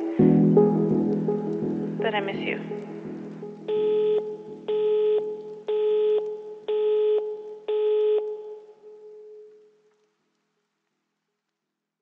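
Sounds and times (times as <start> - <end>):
telephone busy tone beeps: 3.7 - 9.4.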